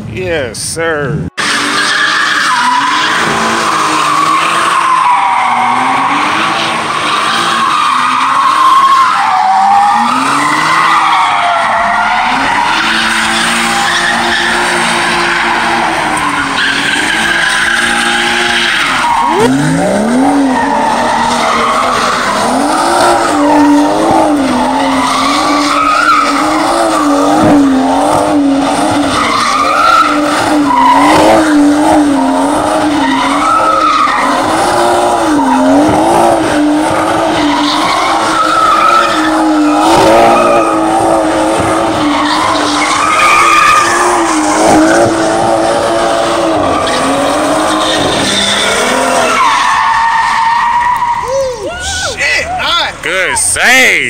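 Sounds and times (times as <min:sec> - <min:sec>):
car engine revving: 0:01.3 - 0:51.3
tyres squealing: 0:01.4 - 0:54.0.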